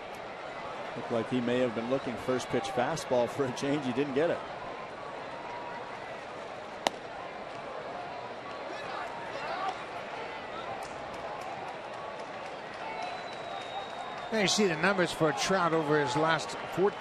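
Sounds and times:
baseball smacking into mitt: 6.8s - 7.1s.

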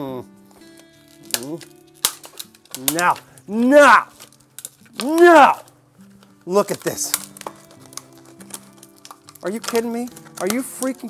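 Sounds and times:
background music with held notes: 0.0s - 11.0s
plastic package crackling open: 0.5s - 11.0s.

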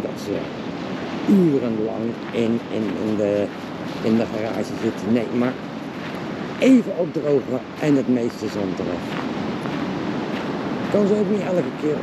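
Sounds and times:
sea surf breaking: 0.0s - 12.0s
wind on microphone: 0.0s - 12.0s.

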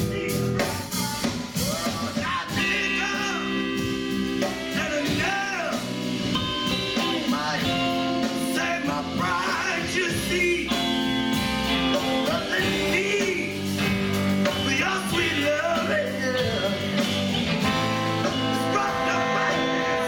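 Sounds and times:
bass: 0.0s - 20.0s
drums: 0.0s - 20.0s
electric guitar: 0.0s - 20.0s
horn section: 0.0s - 20.0s.

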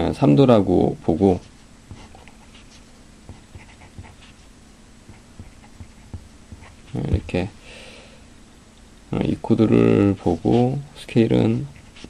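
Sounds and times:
marker scratching on whiteboard: 1.3s - 7.2s, 10.0s - 10.8s, 11.6s - 12.0s
marker tip tapping board: 5.1s - 6.7s.

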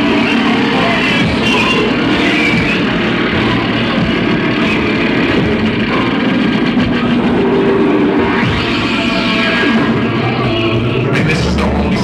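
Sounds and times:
droning electric guitar and noise: 0.0s - 12.0s.

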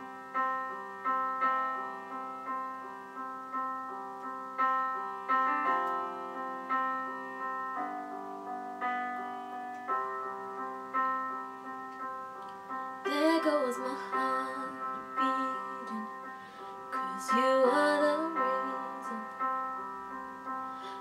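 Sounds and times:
solo piano playing: 0.0s - 21.0s.

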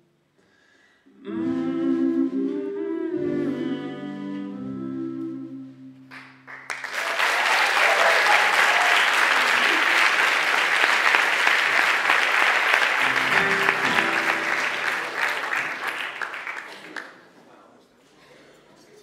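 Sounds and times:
held instrument notes: 1.2s - 6.2s, 12.8s - 16.2s
audience applauding: 6.1s - 17.3s.

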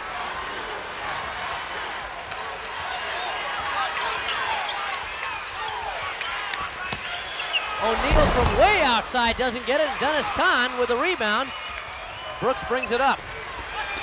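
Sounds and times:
hum of arena crowd: 0.0s - 14.0s.

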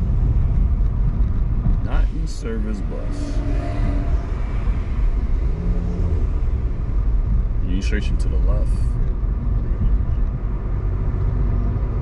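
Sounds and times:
car driving road and engine noise: 0.0s - 12.0s.

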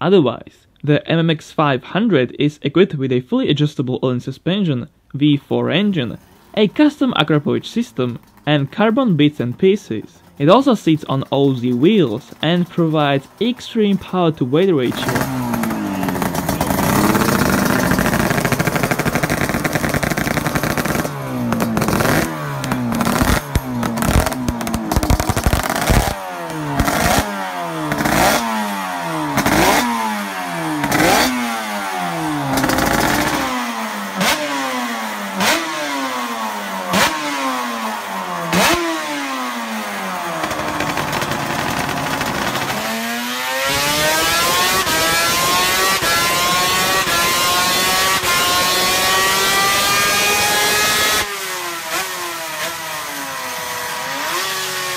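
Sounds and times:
racing engine revving: 14.5s - 54.9s.

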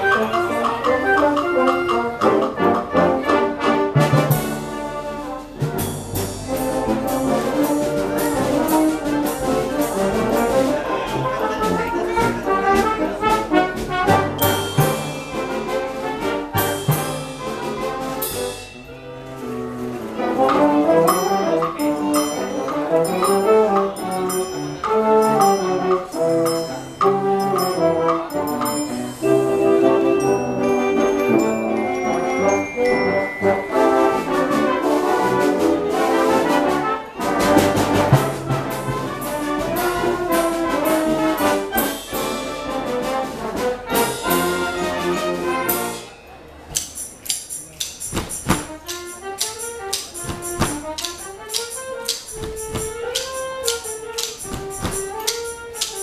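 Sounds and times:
concert band playing: 0.0s - 56.0s
percussion strokes: 0.0s - 56.0s.

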